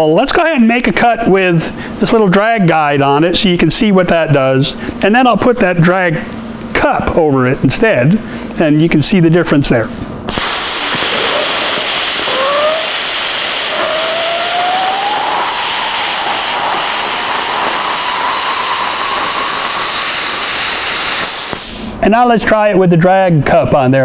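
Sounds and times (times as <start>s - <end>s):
plasma cutter hissing: 10.3s - 22.0s
faint rising whistle: 10.8s - 21.6s.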